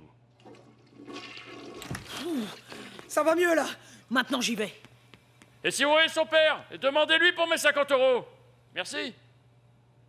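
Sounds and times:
toilet flushing: 0.3s - 3.0s.

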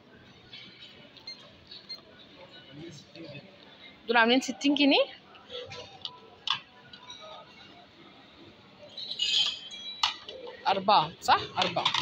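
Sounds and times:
faint background noise: 0.0s - 12.0s
light plastic clicks of plates: 9.4s - 10.6s, 11.4s - 12.0s.

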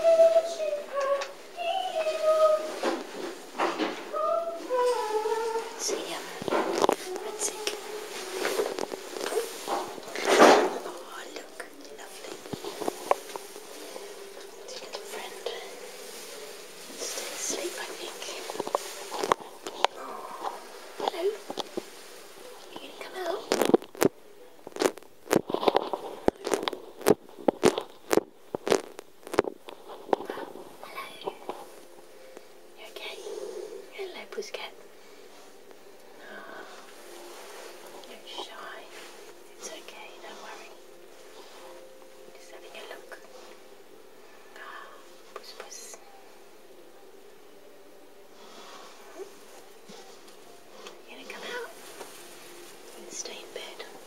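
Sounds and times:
blankets rustling: 0.0s - 54.0s
faint electrical hum: 0.0s - 54.0s
person whispering: 4.1s - 21.8s, 22.4s - 23.9s, 24.8s - 27.9s, 28.7s - 31.8s, 32.8s - 34.8s, 36.2s - 36.9s, 37.9s - 43.5s, 44.4s - 46.2s, 49.1s - 51.8s, 53.0s - 54.0s
sharp crackles of handling: 4.9s - 32.5s.

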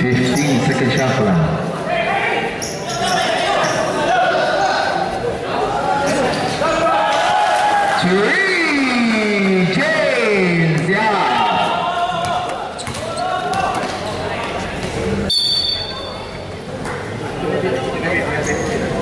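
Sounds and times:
spectators shouting: 1.9s - 9.1s, 11.0s - 13.8s
basketball bouncing: 12.2s - 14.9s.

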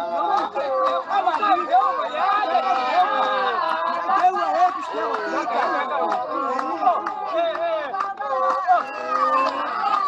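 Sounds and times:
group singing: 0.0s - 10.0s
sharp hand claps: 0.0s - 10.0s.

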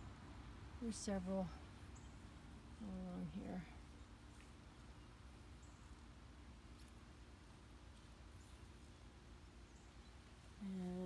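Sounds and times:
faint low background rumble: 0.0s - 11.0s.

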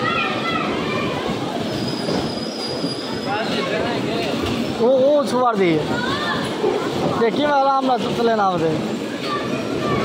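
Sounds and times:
bumper cars running noise: 0.0s - 10.0s.

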